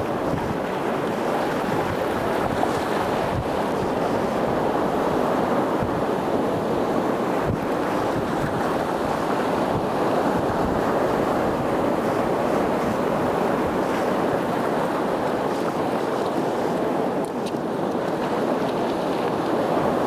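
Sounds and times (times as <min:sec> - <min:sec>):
sea surf washing over rocks: 0:00.0 - 0:20.0
wind rumbling on microphone: 0:00.0 - 0:20.0.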